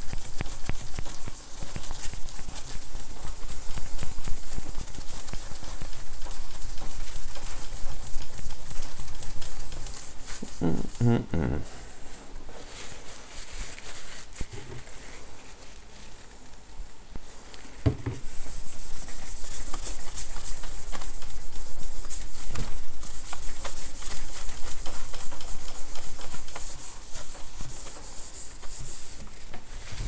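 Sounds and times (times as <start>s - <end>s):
cloth scrubbing glass screen: 0.0s - 11.0s, 17.7s - 30.0s.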